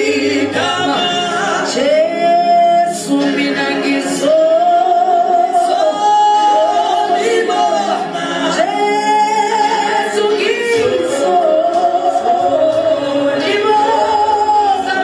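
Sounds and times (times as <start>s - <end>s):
woman singing unaccompanied: 0.0s - 15.0s.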